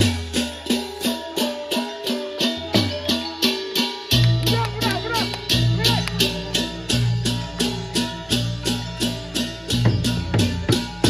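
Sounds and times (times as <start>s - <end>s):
drum: 0.0s - 11.0s
gamelan playing: 0.0s - 11.0s.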